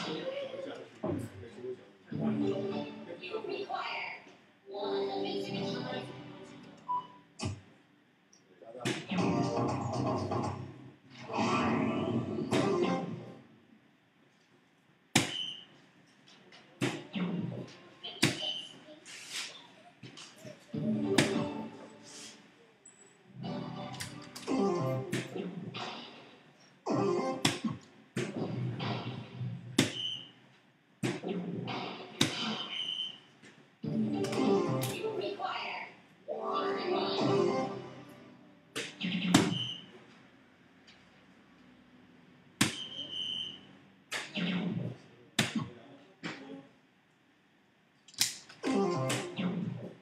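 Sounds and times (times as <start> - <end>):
darts hitting electronic dartboard: 8.8 - 9.8, 12.5 - 12.9, 15.1 - 15.6, 21.1 - 21.6, 25.1 - 26.3, 27.4 - 30.3, 31.0 - 33.2, 38.7 - 39.8, 42.6 - 44.8
dart hitting dartboard: 38.8 - 39.6.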